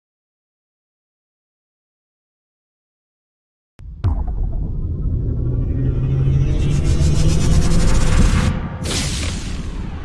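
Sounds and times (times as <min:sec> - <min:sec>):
deep rumble: 0:03.8 - 0:08.9
low hum: 0:03.8 - 0:08.9.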